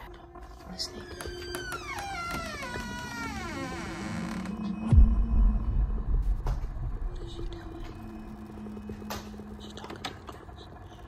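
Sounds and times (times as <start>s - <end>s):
door hinges creaking: 0.9s - 4.9s
low thump: 4.9s - 7.4s.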